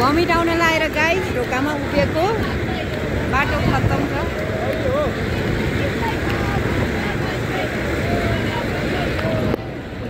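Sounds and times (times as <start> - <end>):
faint voices chattering: 0.0 - 10.0.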